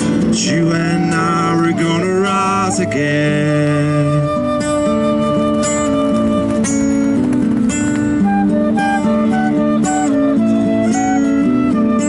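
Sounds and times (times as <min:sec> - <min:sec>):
acoustic guitar chords: 0:00.0 - 0:12.0
flute melody: 0:00.4 - 0:12.0.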